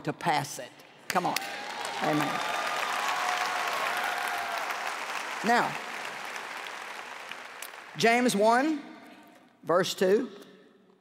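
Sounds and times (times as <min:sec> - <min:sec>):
audience applauding: 0:01.2 - 0:08.4.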